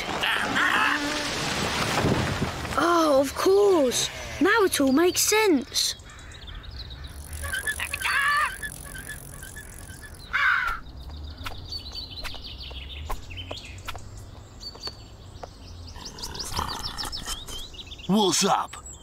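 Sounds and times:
wavering animal calls: 0:06.9 - 0:10.8
small chirps and ticks: 0:06.9 - 0:18.8.

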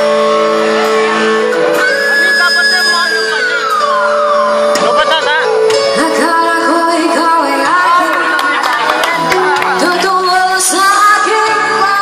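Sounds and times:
live band playing: 0:00.0 - 0:12.0.

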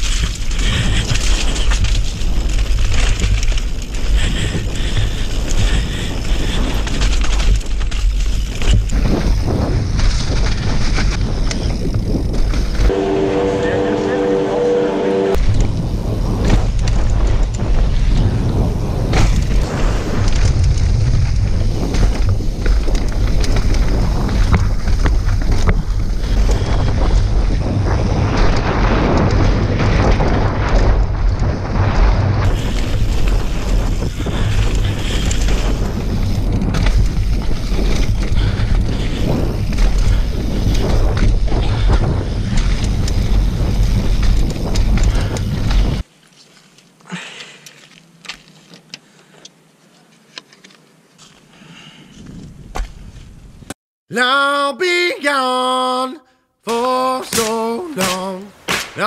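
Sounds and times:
bike tyres rattling over dirt: 0:00.0 - 0:14.7, 0:15.3 - 0:53.8
wind on microphone: 0:08.4 - 0:46.0.

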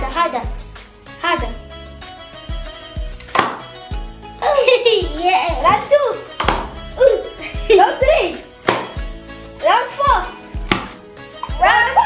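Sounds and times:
background music: 0:00.0 - 0:12.0
confetti popper pop: 0:03.3 - 0:03.8, 0:08.6 - 0:09.0, 0:10.6 - 0:11.0
child laughing: 0:04.4 - 0:06.2, 0:07.0 - 0:08.4.

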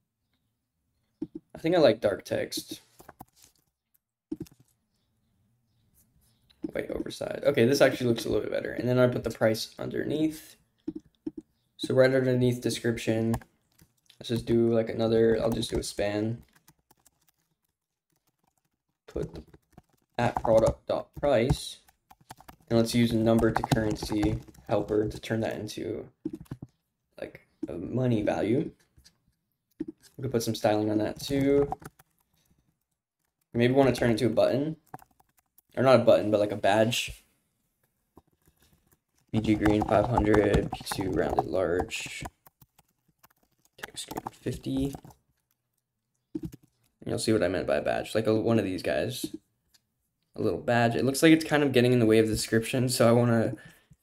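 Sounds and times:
faint keyboard keystrokes: 0:15.4 - 0:25.2.

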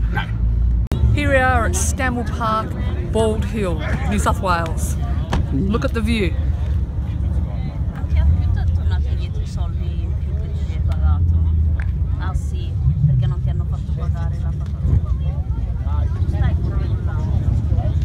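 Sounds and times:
people talking: 0:01.1 - 0:06.4
low rumble: 0:05.0 - 0:18.0.

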